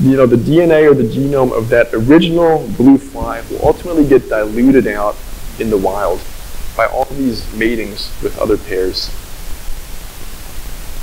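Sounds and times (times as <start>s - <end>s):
low hum: 0.0s - 11.0s
microphone hiss: 0.0s - 11.0s.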